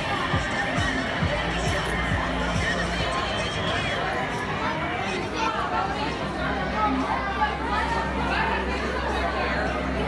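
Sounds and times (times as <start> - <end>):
people talking over one another: 0.0 - 10.0.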